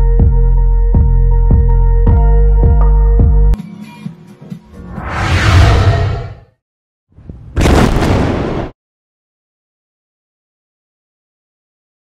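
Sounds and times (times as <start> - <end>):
rising swell: 4.8 - 6.5
explosion boom sound effect: 7.5 - 8.8.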